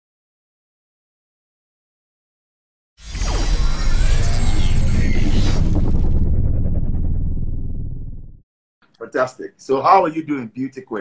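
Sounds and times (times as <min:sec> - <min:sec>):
synthesized sweeping tones: 0:03.0 - 0:08.4.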